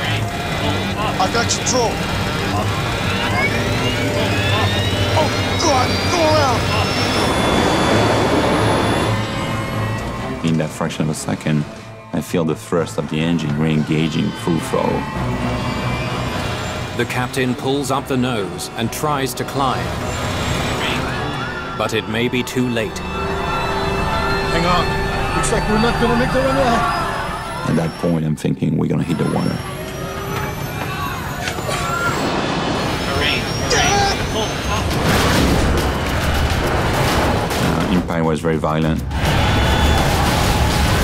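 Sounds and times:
voices crying out: 0.0 - 10.8, 12.1 - 35.2
jet engines at high thrust: 0.0 - 11.1, 29.2 - 37.6
background music: 0.0 - 29.9.

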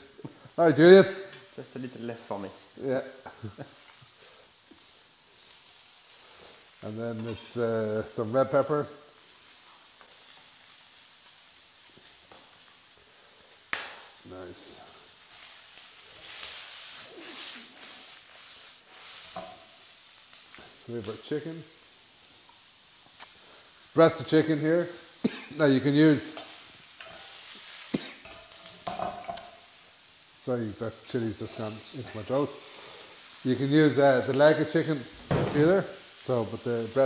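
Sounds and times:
vegetables sizzling in a wok: 0.0 - 37.0.

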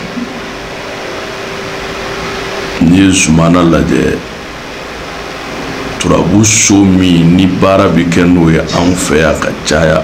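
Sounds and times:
background hiss: 0.0 - 10.0
faint hum: 0.0 - 10.0
man speaking: 2.8 - 4.3, 6.0 - 10.0.

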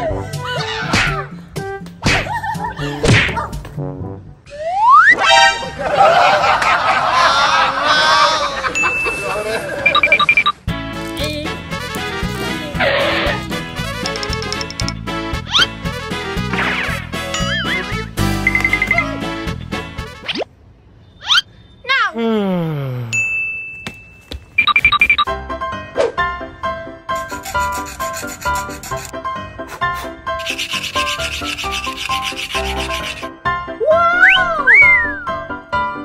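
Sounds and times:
high electronic beeps: 9.8 - 10.6, 18.4 - 19.0, 24.6 - 25.3
upbeat background music: 9.9 - 20.3.

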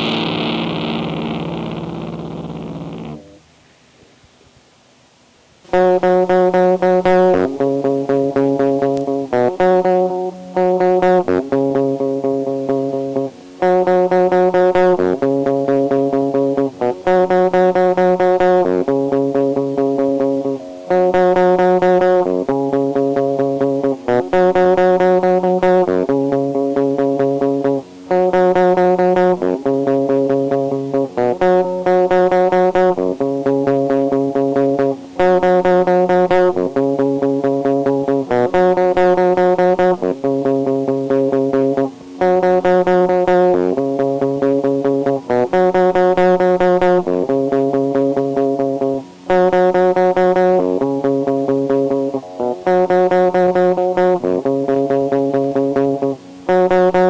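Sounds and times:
bass line: 0.0 - 3.4, 5.7 - 57.0
guitar chords riff: 0.0 - 3.5, 5.7 - 57.0.

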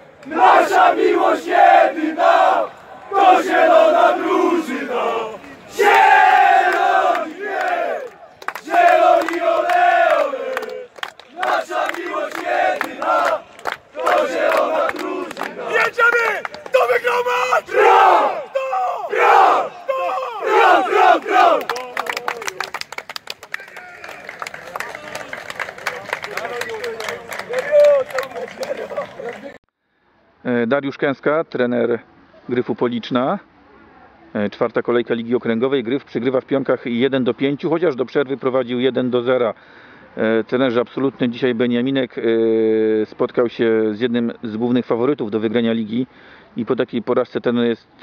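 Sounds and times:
men chanting in unison: 0.3 - 13.4, 14.0 - 16.4.

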